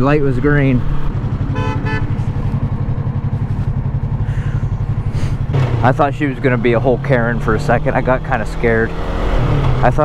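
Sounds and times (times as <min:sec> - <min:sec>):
motorcycle engine pulling away: 0:00.7 - 0:10.0.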